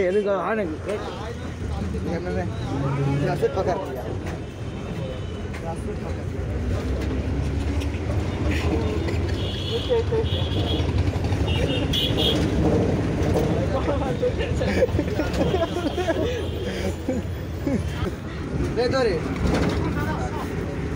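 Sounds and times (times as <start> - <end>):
bus engine and road noise: 0.0 - 20.9
passengers talking: 0.0 - 20.9.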